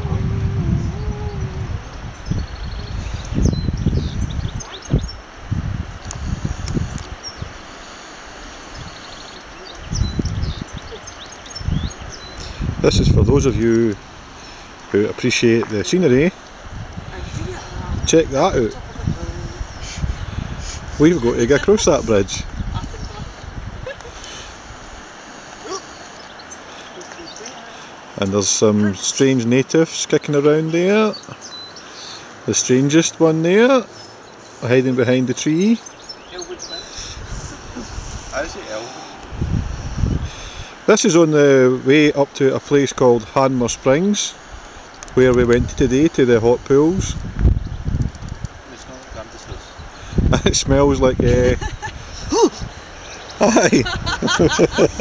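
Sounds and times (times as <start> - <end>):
gusty wind buffeting microphone: 0.0 - 26.6, 36.0 - 40.9, 43.1 - 55.0
small birds chirping: 0.7 - 55.0.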